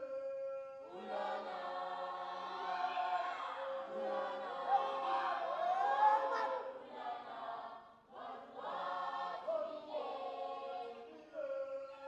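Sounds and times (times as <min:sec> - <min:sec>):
choir singing in harmony: 0:00.8 - 0:12.0.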